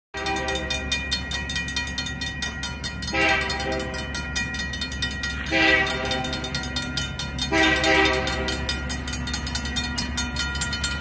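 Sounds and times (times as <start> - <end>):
locomotive horn: 0.2 - 1.0, 3.1 - 4.2, 5.4 - 6.6, 7.4 - 8.8
railroad crossing bell ringing: 0.2 - 11.0.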